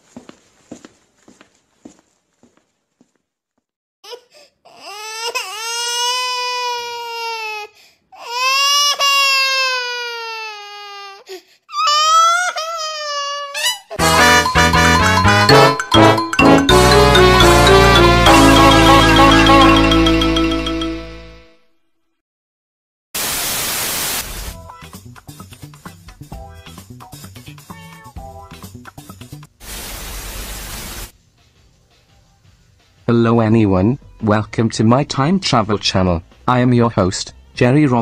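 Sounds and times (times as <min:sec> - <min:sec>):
music with a steady beat: 0:14.0 - 0:21.3
television static hiss: 0:23.2 - 0:24.6, 0:29.6 - 0:31.1.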